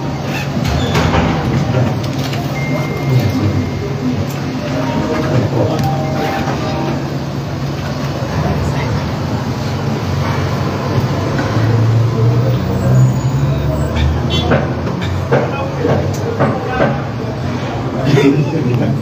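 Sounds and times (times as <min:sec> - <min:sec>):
indistinct voices in a room: 0:00.0 - 0:19.0.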